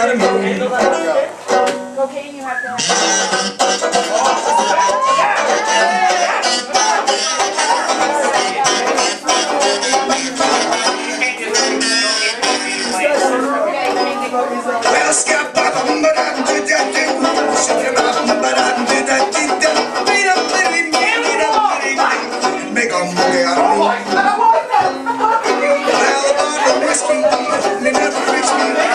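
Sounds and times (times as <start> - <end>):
person singing: 0.0 - 1.3, 2.6 - 14.1, 14.8 - 28.9
plucked strings: 0.0 - 2.0, 2.8 - 14.2, 14.8 - 28.9
wavering lead melody: 2.7 - 13.6.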